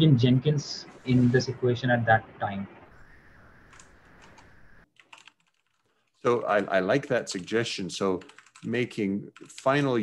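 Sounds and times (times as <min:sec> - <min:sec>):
keyboard typing: 0:03.7 - 0:10.0.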